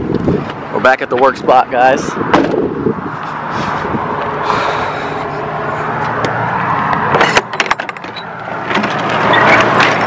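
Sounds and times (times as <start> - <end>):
metal latch clicking and clanking: 6.2 - 10.0
roll-up door rattling open: 7.2 - 10.0.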